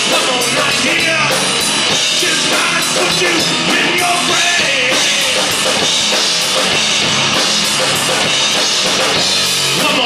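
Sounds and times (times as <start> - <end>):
drum kit with cymbals: 0.0 - 10.0
live rock band playing: 0.0 - 10.0.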